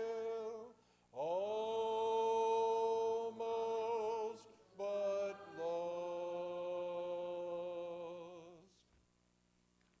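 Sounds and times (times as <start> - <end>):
congregation singing a hymn: 0.0 - 8.8.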